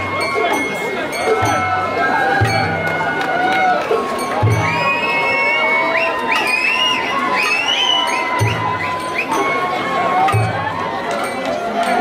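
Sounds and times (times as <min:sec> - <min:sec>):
crowd cheering: 0:00.0 - 0:12.0
high bamboo flute: 0:00.0 - 0:12.0
high-pitched crowd shouts: 0:00.0 - 0:12.0
low taiko drum booms: 0:02.3 - 0:03.0.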